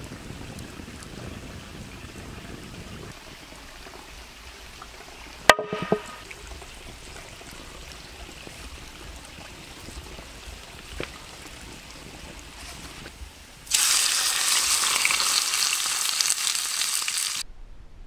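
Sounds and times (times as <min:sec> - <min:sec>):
running water: 0:00.0 - 0:17.4.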